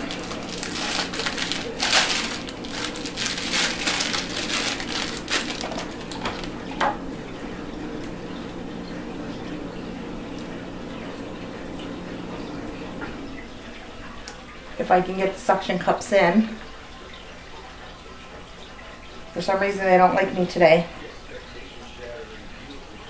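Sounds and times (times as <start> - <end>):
plastic packaging crinkling: 0.0 - 6.7
handling of heater cord: 0.0 - 6.9
steady low hum: 0.0 - 23.0.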